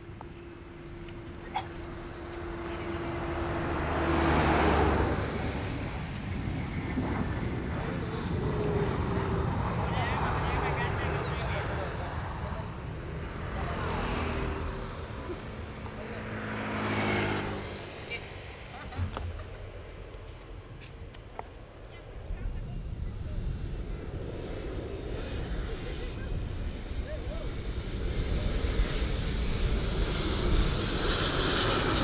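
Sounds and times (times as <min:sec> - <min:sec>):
jet airliner engines landing: 0:00.0 - 0:32.0.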